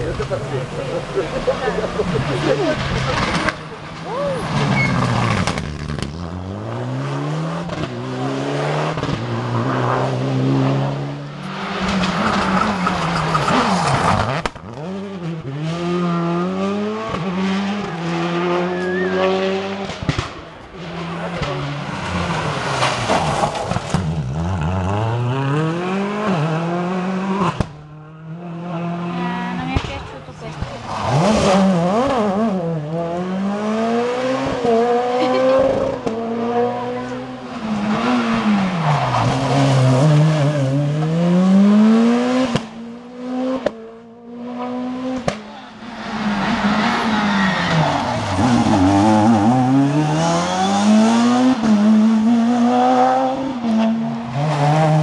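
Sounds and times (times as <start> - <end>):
rally car engines revving: 0.0 - 55.0.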